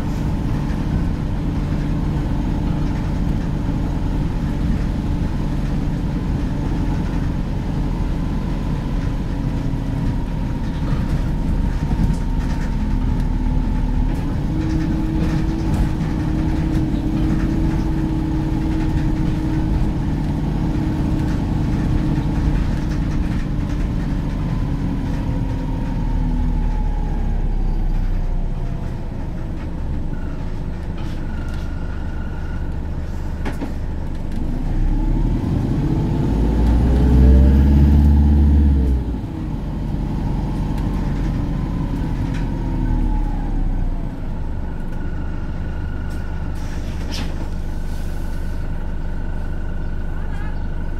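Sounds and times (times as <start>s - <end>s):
bus engine droning: 0.0s - 50.9s.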